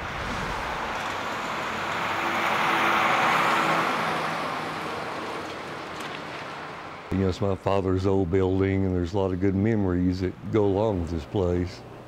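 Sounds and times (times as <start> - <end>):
car passing by: 0.0 - 7.1.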